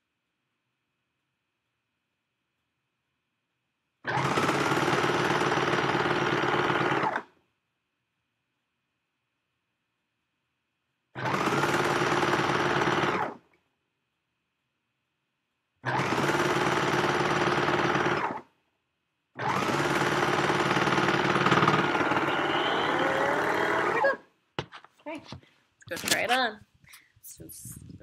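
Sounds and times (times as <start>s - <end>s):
sewing machine stitching fabric: 4.0s - 7.4s, 11.1s - 13.5s, 15.8s - 18.5s, 19.4s - 24.2s.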